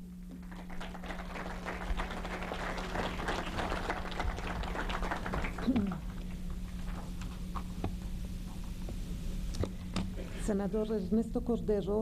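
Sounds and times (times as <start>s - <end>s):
low electrical hum: 0.0s - 12.0s
audience applauding: 0.4s - 6.3s.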